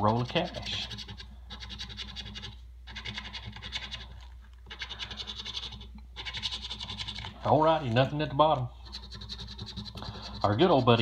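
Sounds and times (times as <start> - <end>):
coin scratching lottery ticket: 0.0 - 8.1, 8.8 - 11.0.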